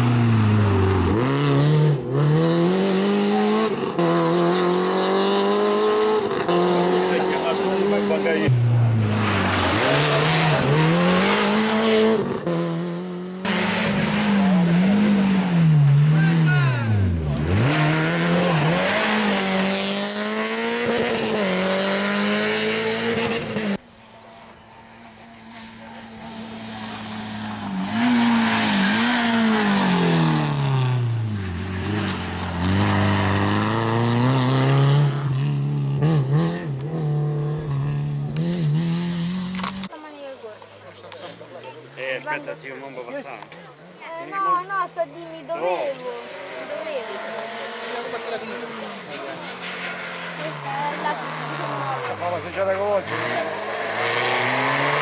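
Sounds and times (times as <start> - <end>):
rally car engines revving: 0.0 - 40.0, 40.8 - 55.0.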